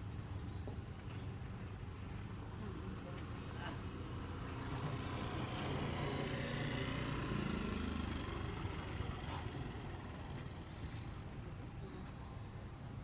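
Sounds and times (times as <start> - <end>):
vehicle engine rumble passing by: 0.0 - 13.0.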